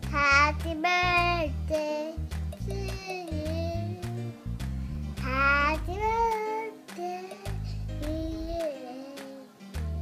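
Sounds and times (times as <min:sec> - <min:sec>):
young child singing: 0:00.0 - 0:04.3, 0:05.2 - 0:10.0
background music with beat and bass: 0:00.0 - 0:10.0.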